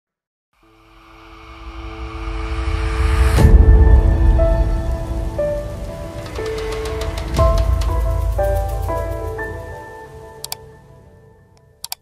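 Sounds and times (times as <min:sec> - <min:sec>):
deep rumbling bed: 0:03.4 - 0:09.4.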